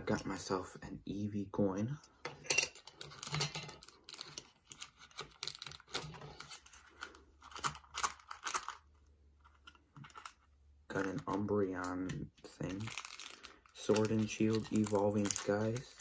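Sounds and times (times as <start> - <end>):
plastic packaging crinkling and tearing: 3.0 - 9.0, 9.6 - 16.0.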